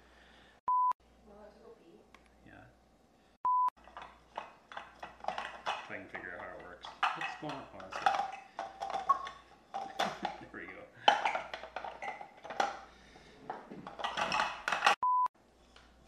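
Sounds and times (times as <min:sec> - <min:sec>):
plastic parts clicking: 0:03.8 - 0:12.9, 0:13.6 - 0:15.0
person talking: 0:05.9 - 0:08.2.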